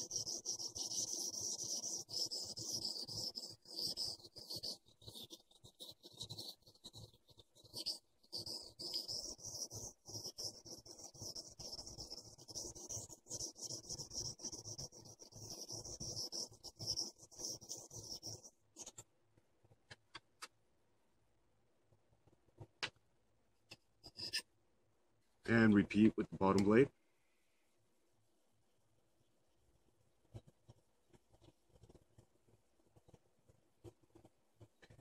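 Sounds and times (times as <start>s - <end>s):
blade scraping on whetstone: 0.0s - 18.5s, 24.0s - 24.5s.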